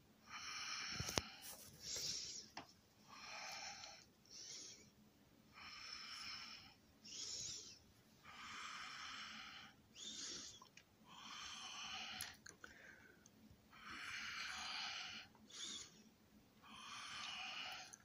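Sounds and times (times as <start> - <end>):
hissy breathing: 0.2 - 18.0.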